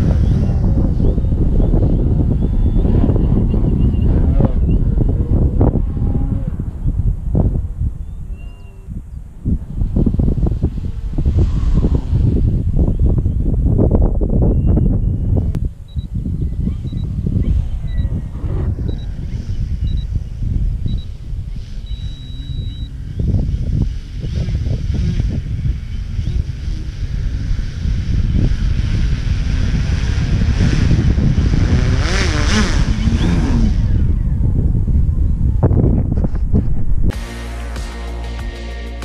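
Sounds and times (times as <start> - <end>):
wind buffeting microphone: 0.0 - 37.2
short high electronic beeps: 21.8 - 23.0.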